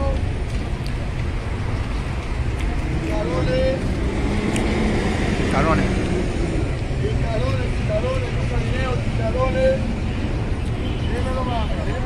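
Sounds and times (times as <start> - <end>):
low traffic rumble: 0.0 - 12.0
people talking: 3.1 - 3.9, 6.9 - 9.9, 11.0 - 12.0.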